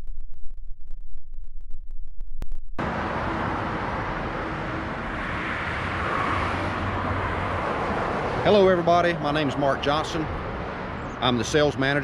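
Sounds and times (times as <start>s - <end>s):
passing cars: 2.8s - 12.0s.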